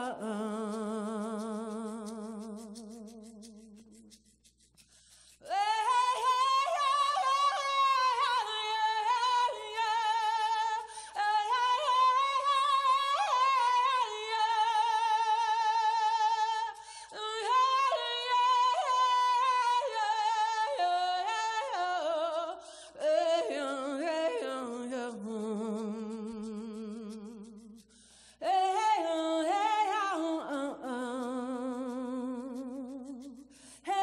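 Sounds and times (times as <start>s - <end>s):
woman singing unaccompanied: 0.0s - 4.2s, 5.4s - 27.8s, 28.4s - 34.0s.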